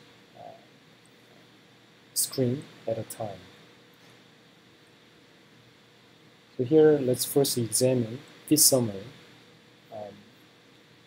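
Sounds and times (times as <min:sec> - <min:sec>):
faint steady hiss: 0:00.0 - 0:11.0
man saying uh: 0:00.4 - 0:00.6, 0:02.2 - 0:03.4, 0:06.6 - 0:09.1, 0:09.9 - 0:10.2.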